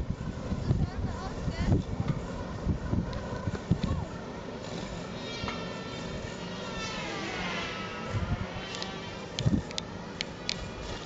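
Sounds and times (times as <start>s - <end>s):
robotic lawnmower motor whine: 4.6s - 11.0s.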